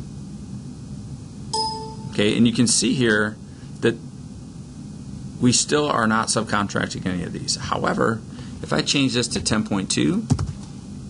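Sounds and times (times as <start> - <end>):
computer notification chime: 1.6 - 2.3.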